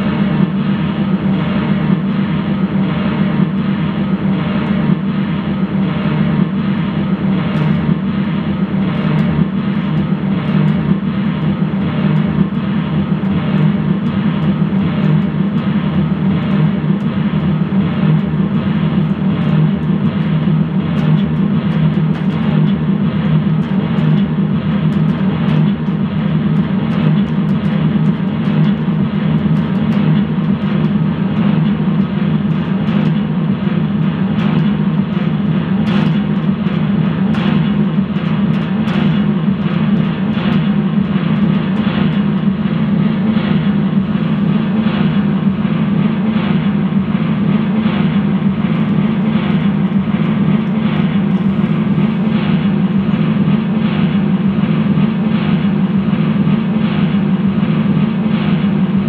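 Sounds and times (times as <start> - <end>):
noise music drone: 0.0 - 59.0.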